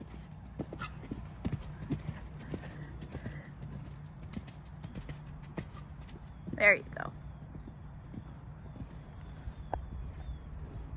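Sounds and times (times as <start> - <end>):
horse hoofbeats on sand: 0.0 - 10.9
steady low rumble: 0.0 - 10.9.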